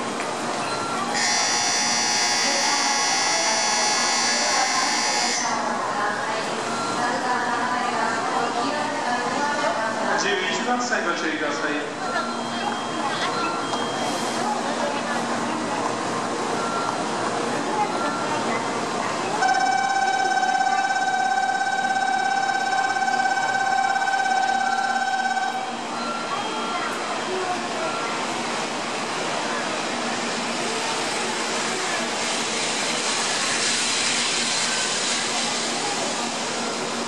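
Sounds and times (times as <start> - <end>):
station platform background noise: 0.0 - 37.0
indistinct voices: 11.8 - 33.8
train wheels and air rushing: 30.0 - 37.0.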